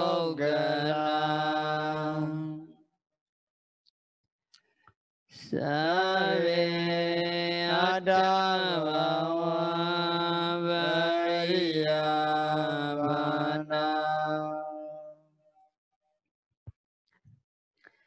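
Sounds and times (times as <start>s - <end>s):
man chanting: 0.0s - 2.7s, 5.5s - 15.1s.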